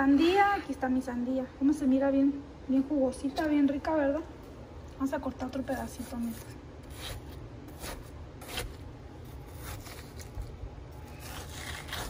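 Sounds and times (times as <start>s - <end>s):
knife cutting watermelon: 5.6s - 12.0s.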